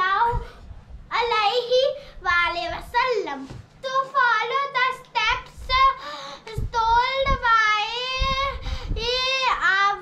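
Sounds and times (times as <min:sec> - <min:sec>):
girl reciting in sing-song voice: 0:00.0 - 0:10.0.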